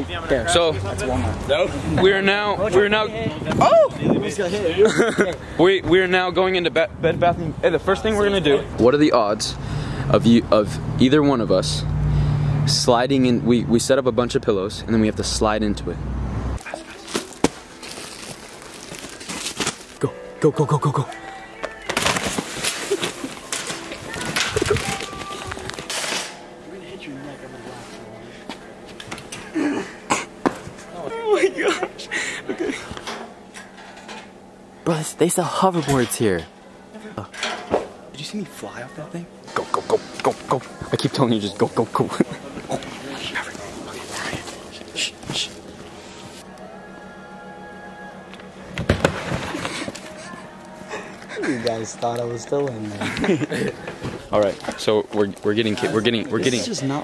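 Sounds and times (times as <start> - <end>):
young men laughing: 3.6 - 5.6, 22.7 - 25.5, 29.3 - 33.1, 41.9 - 42.9, 49.4 - 52.0, 52.6 - 54.2
plastic packaging crinkling: 16.8 - 20.0.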